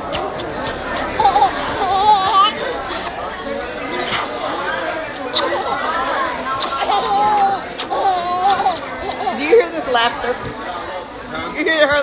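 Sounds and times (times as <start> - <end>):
baby laughing and squealing: 0.0 - 3.2
people chattering: 0.0 - 12.0.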